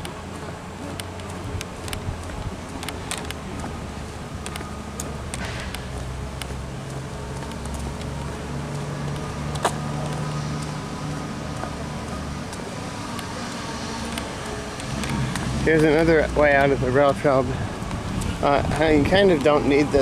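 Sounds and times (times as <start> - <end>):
car engines humming: 0.0 - 20.0.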